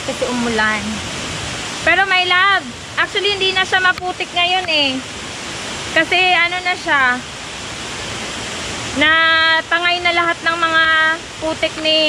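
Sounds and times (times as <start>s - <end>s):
rushing water: 0.0s - 12.0s.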